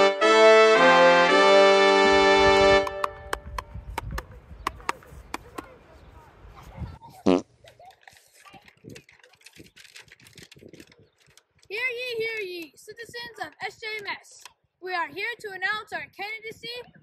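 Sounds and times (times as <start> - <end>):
brass fanfare: 0.0 - 3.4.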